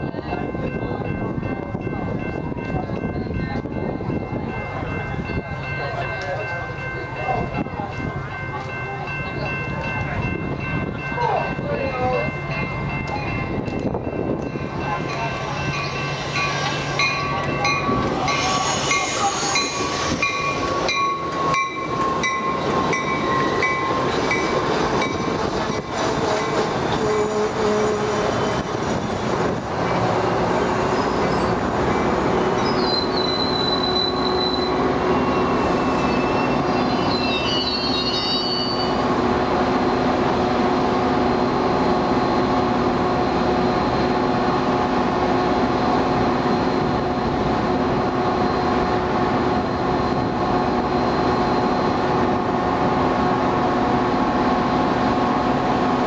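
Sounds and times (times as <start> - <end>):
train cars rolling past: 0.0 - 56.0
wheel and brake squeal: 18.3 - 20.1, 32.6 - 39.0
train horn blasts: 26.2 - 28.6.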